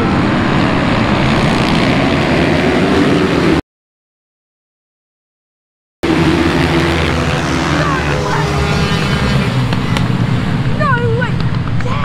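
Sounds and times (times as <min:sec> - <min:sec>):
motorcycle engines racing: 0:00.0 - 0:03.6, 0:06.0 - 0:12.0.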